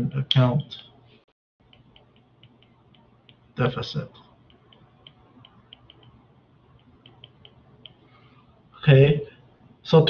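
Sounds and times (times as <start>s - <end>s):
stylus tapping on tablet screen: 1.6s - 3.6s, 4.3s - 8.1s.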